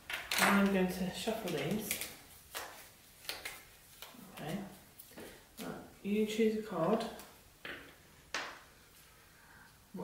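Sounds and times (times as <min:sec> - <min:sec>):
paper cards shuffling: 0:00.1 - 0:05.7.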